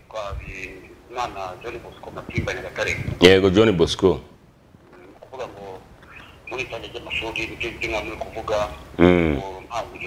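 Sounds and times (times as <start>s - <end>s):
person speaking through phone speaker: 0.1s - 3.2s, 4.9s - 10.0s.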